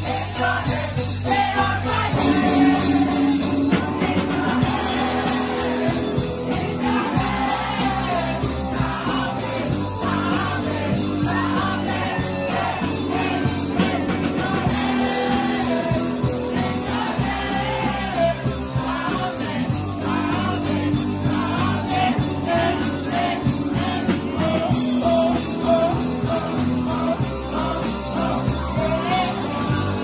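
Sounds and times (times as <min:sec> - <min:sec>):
live rock band: 0:00.0 - 0:30.0.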